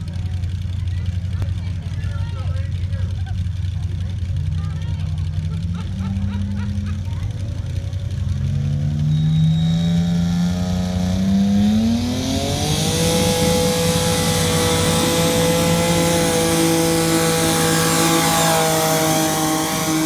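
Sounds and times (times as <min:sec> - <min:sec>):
tractor engine at full throttle: 0:00.0 - 0:20.0.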